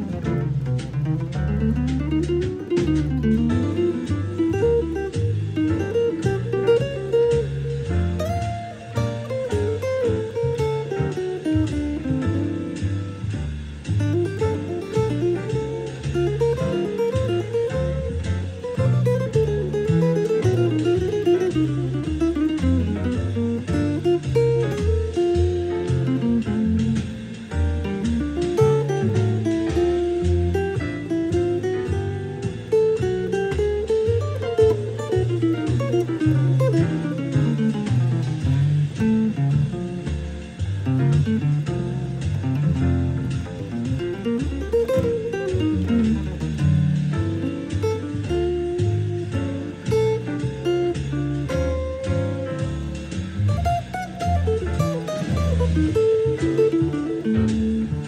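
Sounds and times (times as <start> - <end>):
jazz guitar melodic runs: 0.0 - 58.0
low bass notes: 0.0 - 58.0.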